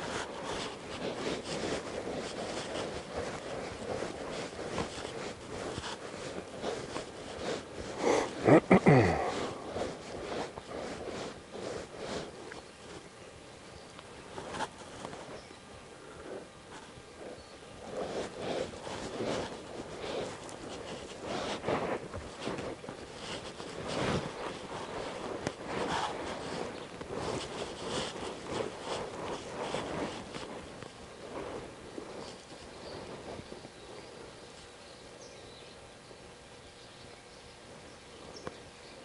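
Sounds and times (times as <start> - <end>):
hoof thuds in soft dirt: 0.0 - 8.0, 16.2 - 34.8.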